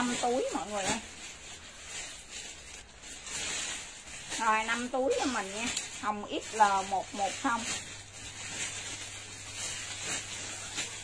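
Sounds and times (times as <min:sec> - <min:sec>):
jacket fabric rustling: 0:00.0 - 0:11.0.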